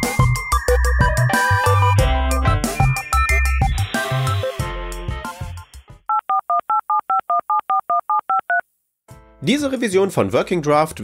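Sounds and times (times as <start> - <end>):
touch-tone keypad beeps: 6.1 - 8.6.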